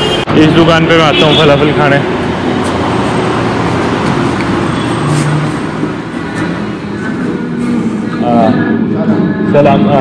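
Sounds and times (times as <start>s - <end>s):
passing cars humming: 0.0s - 10.0s.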